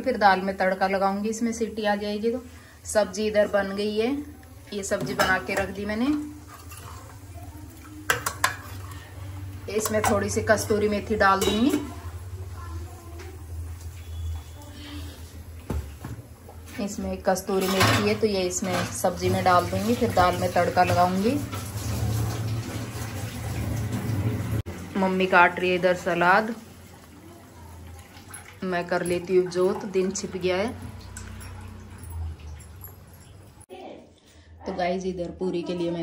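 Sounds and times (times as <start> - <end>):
woman speaking: 0.0 - 6.3, 16.7 - 21.5, 24.9 - 26.6, 33.7 - 36.0
water boiling and bubbling: 0.0 - 33.7
kitchen hum: 0.0 - 36.0
ladle moving in pot: 5.1 - 7.3.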